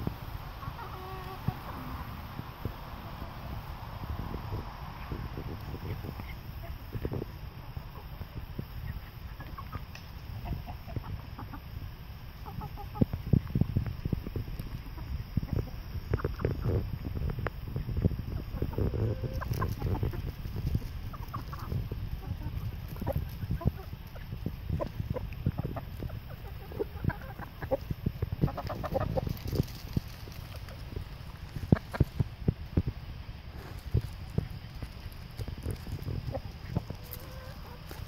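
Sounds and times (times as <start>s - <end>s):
chickens clucking: 0.0s - 38.0s.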